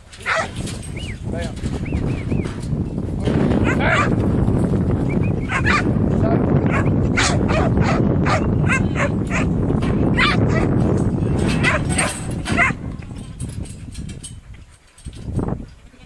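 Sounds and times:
steady low rumble: 0.6s - 14.6s.

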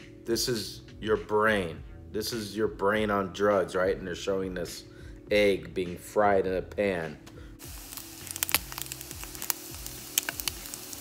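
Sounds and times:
quiet background music: 0.0s - 11.0s
egg sizzling in a pan: 7.6s - 11.0s.

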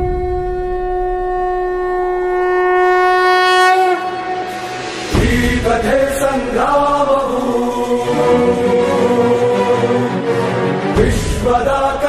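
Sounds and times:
conch shell blown: 0.0s - 5.2s.

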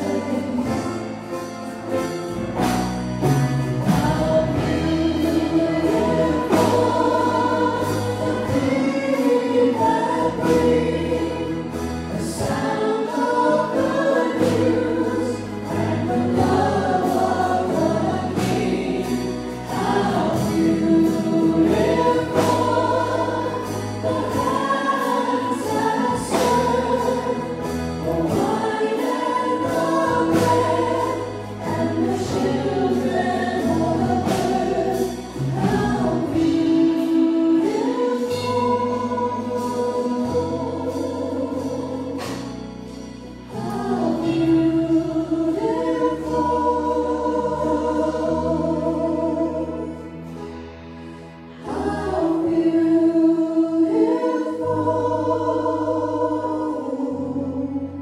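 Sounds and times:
drum kit: 0.0s - 52.9s
guitars: 0.0s - 58.0s
voices singing together: 0.0s - 58.0s.

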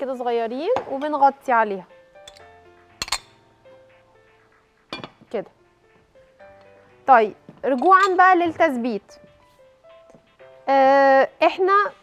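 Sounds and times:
soft background music: 0.0s - 12.0s
pot lid clinking: 2.3s - 3.4s, 7.7s - 8.3s.

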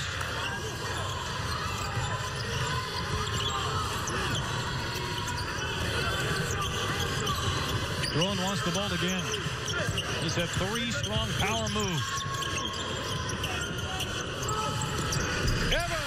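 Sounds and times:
crowd murmur: 0.0s - 16.0s.

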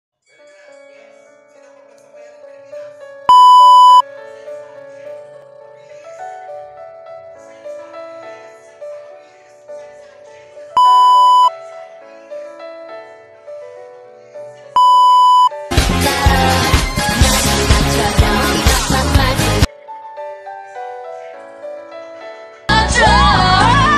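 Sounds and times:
soft background music: 0.2s - 16.0s, 19.4s - 23.9s
buzzy test-pattern beep: 3.3s - 4.0s, 10.8s - 11.5s, 14.8s - 15.5s
loud pop music: 14.8s - 19.7s, 22.7s - 23.9s.

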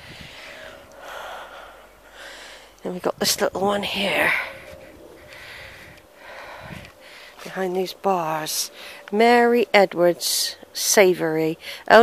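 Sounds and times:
person breathing softly: 0.0s - 2.8s, 4.3s - 7.4s.

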